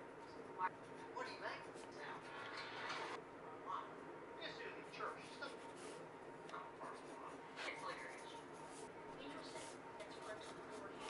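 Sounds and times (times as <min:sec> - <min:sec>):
pencil scratching on paper: 0:00.7 - 0:02.4, 0:04.9 - 0:11.0.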